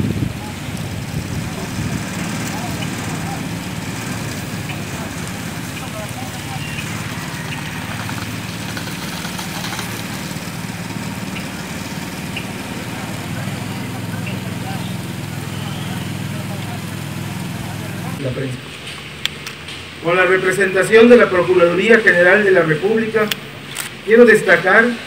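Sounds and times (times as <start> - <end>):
faint voices: 0.0 - 18.7
engine idling: 0.0 - 24.2.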